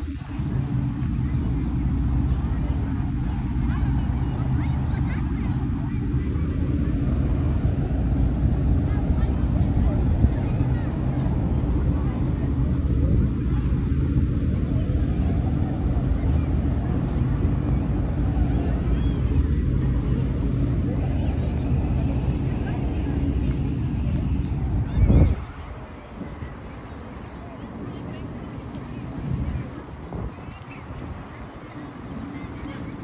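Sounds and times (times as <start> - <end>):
ship engine droning: 0.0 - 33.0.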